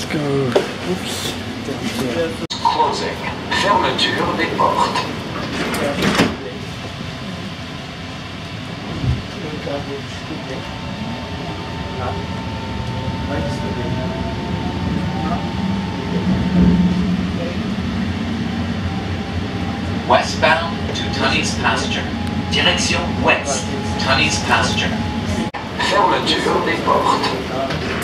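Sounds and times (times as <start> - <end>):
train running noise: 0.0 - 28.0
train whine rising in pitch: 9.4 - 27.0.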